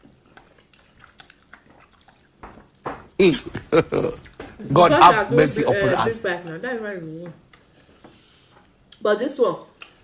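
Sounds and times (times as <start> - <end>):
faint chewing: 0.0 - 4.9, 7.3 - 9.1, 9.7 - 10.0
wet mouth clicks: 0.3 - 2.8.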